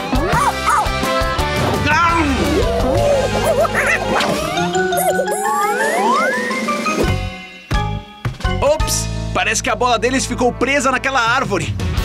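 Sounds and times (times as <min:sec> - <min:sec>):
bright background music: 0:00.0 - 0:12.0
cartoon monkey-like chattering calls: 0:02.4 - 0:06.5.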